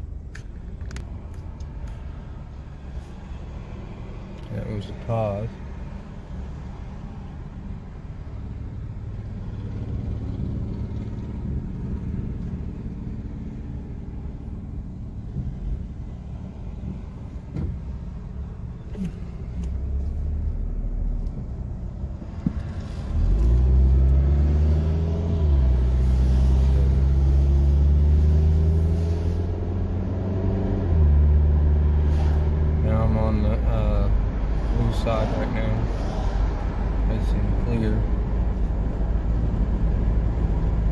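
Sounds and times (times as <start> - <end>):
car engine revving: 22.4 - 38.0.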